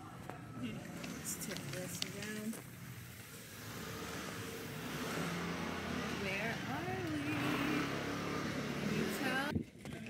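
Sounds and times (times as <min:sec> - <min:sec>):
motor scooter engine running: 0:03.4 - 0:09.5.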